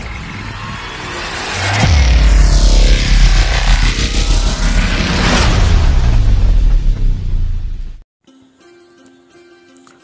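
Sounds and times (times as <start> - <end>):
sweeping whoosh: 0.1 - 8.0
electronic intro music: 0.6 - 8.0
deep bass hit: 0.8 - 8.0.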